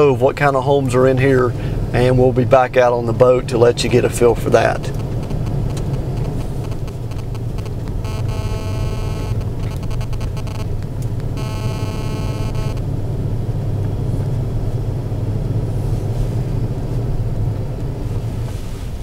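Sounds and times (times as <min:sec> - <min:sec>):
car engine and tyres rumbling: 0:00.0 - 0:19.0
high buzzy tone: 0:04.6 - 0:12.9.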